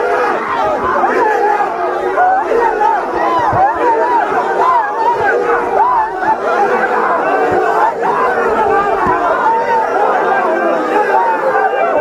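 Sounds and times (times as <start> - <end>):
crowd of men shouting and chanting: 0.0 - 12.0.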